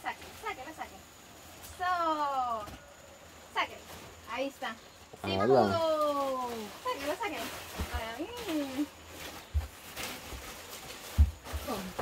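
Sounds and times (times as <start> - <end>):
plastic rustling: 1.9 - 5.0, 5.7 - 12.0.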